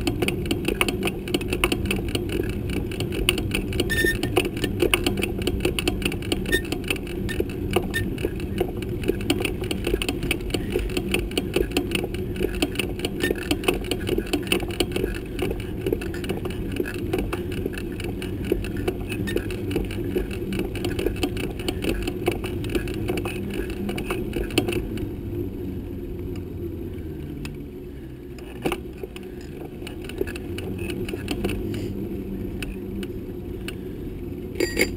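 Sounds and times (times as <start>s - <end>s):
bike mount clicking and rattling: 0.0s - 25.0s, 34.6s - 34.9s
bicycle tyres rumbling on road: 0.0s - 34.9s.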